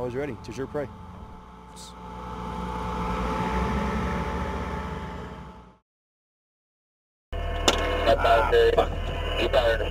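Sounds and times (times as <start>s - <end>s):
armored vehicle driving past: 0.0s - 5.8s.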